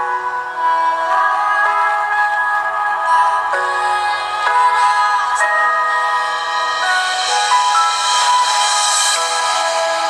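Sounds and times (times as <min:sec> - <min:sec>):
thin music from phone speakers: 0:00.0 - 0:10.0.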